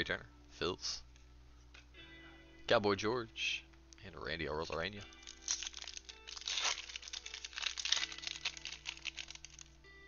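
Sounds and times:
background music: 1.2s - 10.0s
wrapper crinkling and tearing: 5.1s - 9.8s.

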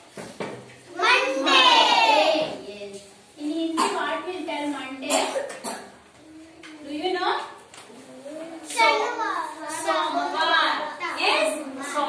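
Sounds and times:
young children's voices: 0.9s - 4.2s, 5.1s - 6.9s, 7.9s - 12.0s
person coughing: 5.1s - 5.9s.

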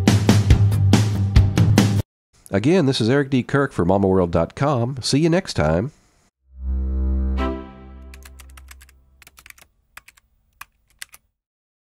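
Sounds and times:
low synth chord: 6.5s - 8.2s
keyboard typing clicks: 8.1s - 11.2s.

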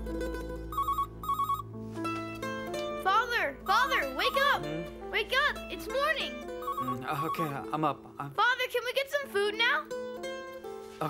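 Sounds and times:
plucked-string background music: 0.0s - 11.0s
electronic ringtone trilling: 0.7s - 1.7s, 3.6s - 4.9s, 6.2s - 7.8s.

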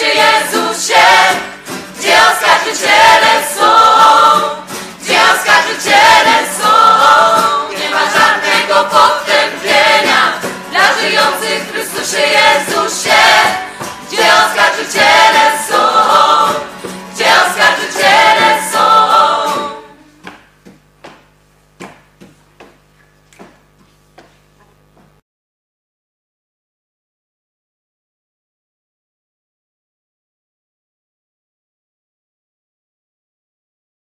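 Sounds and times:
choir singing: 0.0s - 20.1s.

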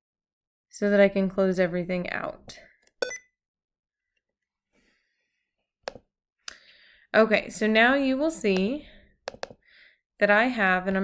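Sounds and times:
short computer beep: 3.0s - 3.3s.

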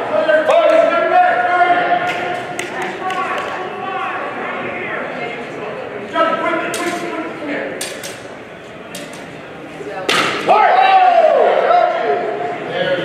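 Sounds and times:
loud drawn-out shout: 10.5s - 12.5s.

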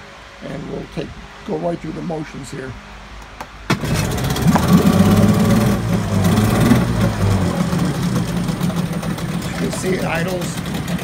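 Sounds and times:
outboard motor starting and idling: 3.7s - 11.0s.

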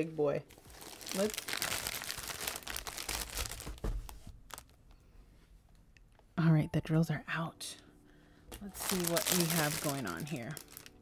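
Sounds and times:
plastic wrap crinkling: 0.4s - 5.0s, 8.6s - 11.0s
soft thump: 3.7s - 4.1s.

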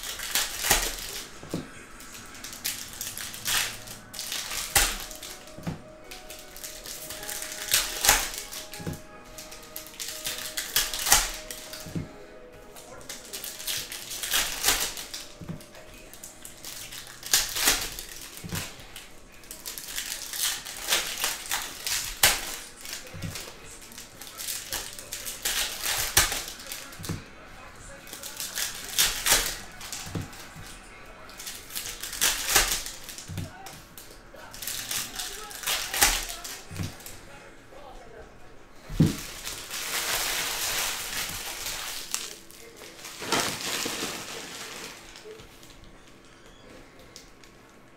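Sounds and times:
cards flicking: 0.0s - 12.2s, 12.8s - 27.3s, 28.1s - 37.2s
card packs ripping open: 0.0s - 37.2s, 38.8s - 47.5s.

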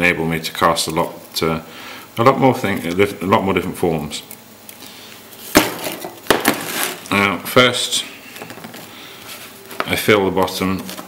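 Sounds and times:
handling noise: 5.4s - 7.1s, 8.3s - 10.0s.

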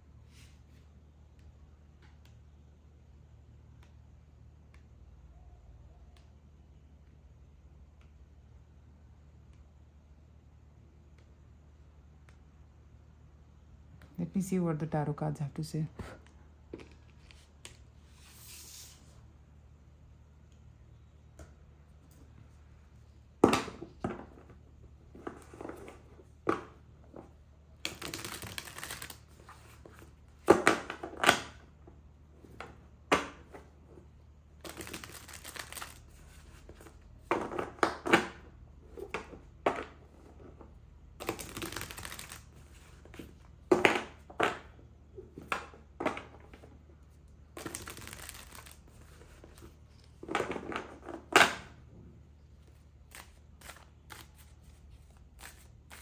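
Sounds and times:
cards being shuffled: 16.8s - 19.1s, 27.8s - 31.6s, 34.6s - 38.0s, 41.2s - 43.5s, 47.5s - 51.4s, 52.6s - 56.0s.

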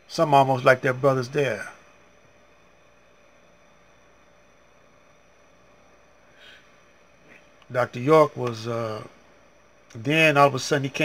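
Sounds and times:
faint steady hiss: 0.0s - 11.0s
faint steady tone: 0.0s - 11.0s.

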